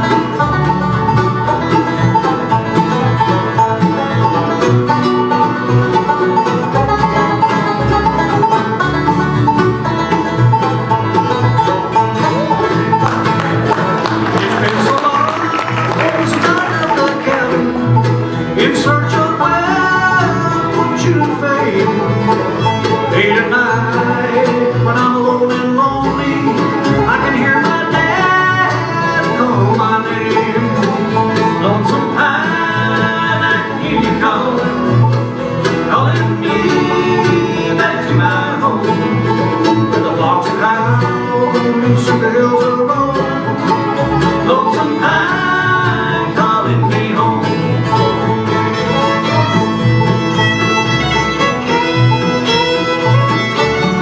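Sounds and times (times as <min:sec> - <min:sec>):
banjo: 0:00.0 - 0:54.0
bluegrass band playing: 0:00.0 - 0:54.0
fiddle: 0:00.0 - 0:54.0
man singing: 0:13.8 - 0:49.6.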